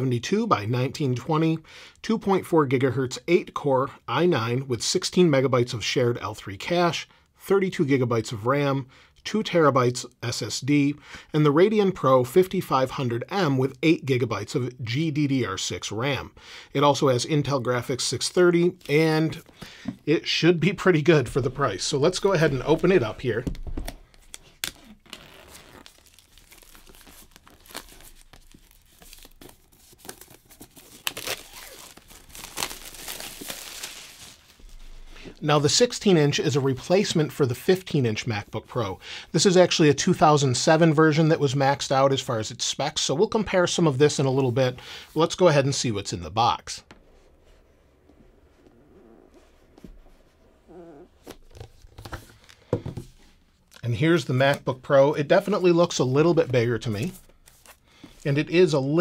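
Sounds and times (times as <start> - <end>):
plastic shrink wrap tearing: 24.2 - 34.6.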